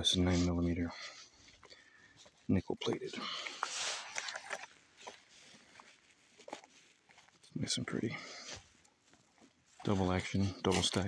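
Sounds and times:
leather rubbing and scraping: 0:02.6 - 0:07.8, 0:08.4 - 0:11.0.

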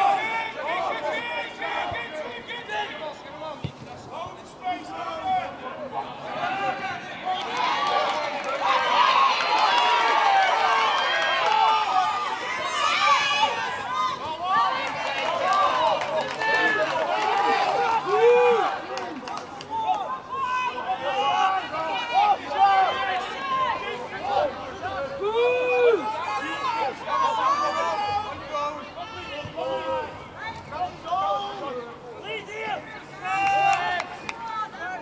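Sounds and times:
crowd shouting and cheering: 0:00.0 - 0:35.0.

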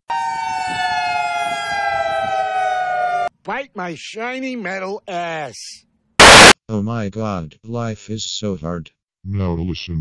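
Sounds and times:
warning siren wailing: 0:00.1 - 0:03.3.

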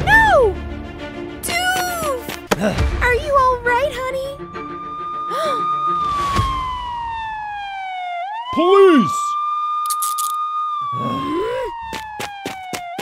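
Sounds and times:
police siren wailing: 0:04.4 - 0:13.0.

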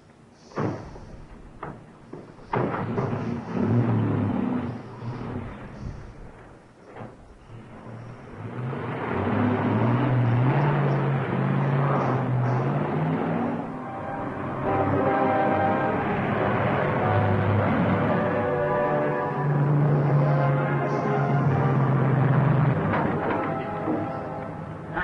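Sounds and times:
old car engine pulling away: 0:00.4 - 0:25.0.

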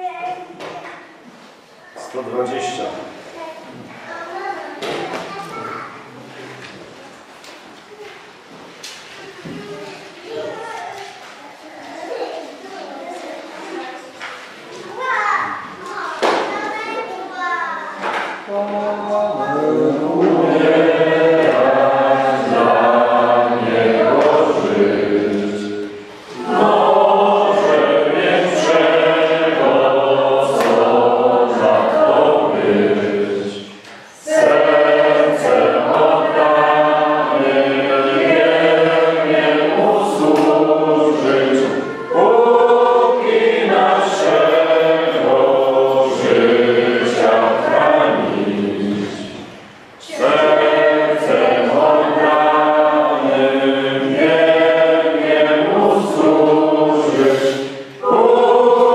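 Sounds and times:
choir singing: 0:18.4 - 0:58.9.

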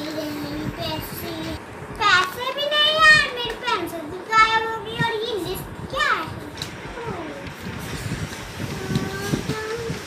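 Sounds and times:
child's sing-song voice: 0:00.0 - 0:10.0.

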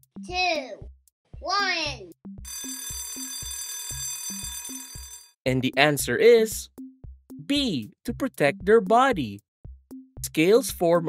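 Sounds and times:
background music with steady beat: 0:00.0 - 0:11.0
alarm clock bell ringing: 0:02.5 - 0:05.4.

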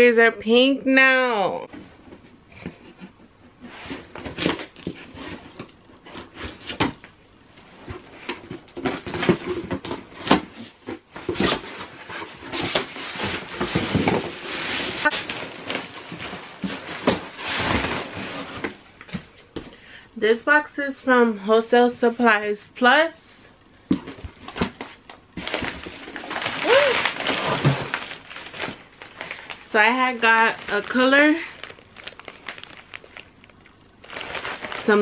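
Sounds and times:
plastic wrapping crinkling: 0:08.5 - 0:19.1, 0:24.2 - 0:35.0.

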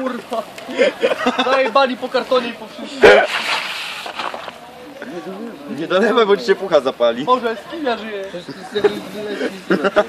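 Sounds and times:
fire flaring up with a whoosh: 0:03.0 - 0:05.0.

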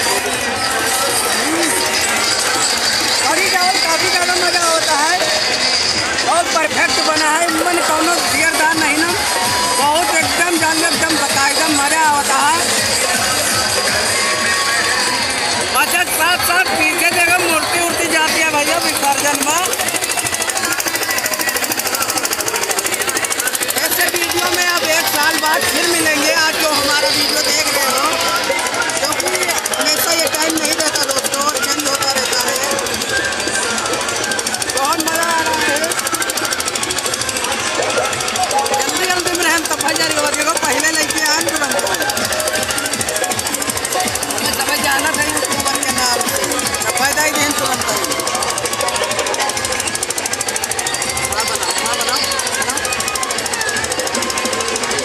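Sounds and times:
faint voices: 0:00.0 - 0:55.0
loud festival music: 0:00.0 - 0:55.0
rapid mechanical rattle: 0:00.0 - 0:55.0.

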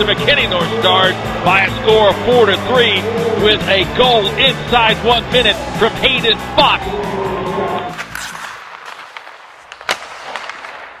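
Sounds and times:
sharp crack: 0:07.9 - 0:11.0.

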